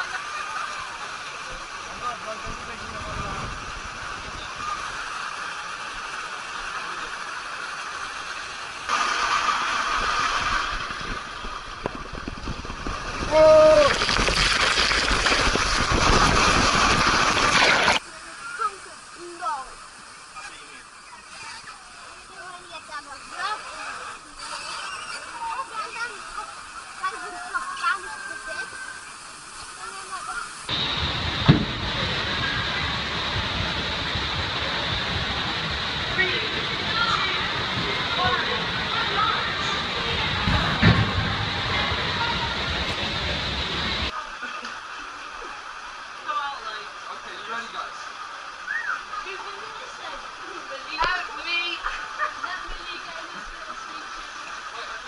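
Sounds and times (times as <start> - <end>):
water spray rushing: 0.0 - 55.0
wind buffeting microphone: 9.8 - 17.6, 30.7 - 44.1
faint voices: 31.5 - 46.2.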